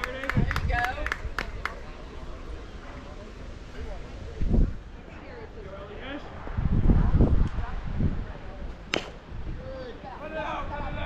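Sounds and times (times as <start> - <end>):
wind buffeting microphone: 0.0 - 1.7, 3.8 - 11.0
sharp impact crack: 8.8 - 9.3.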